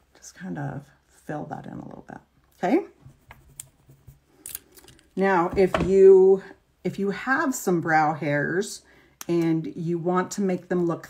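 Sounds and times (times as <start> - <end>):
light scratching: 3.0 - 4.9.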